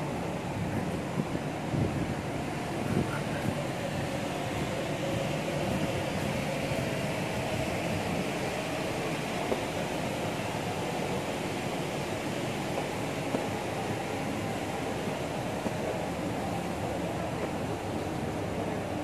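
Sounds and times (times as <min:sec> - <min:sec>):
city hum and rush: 0:00.0 - 0:19.0.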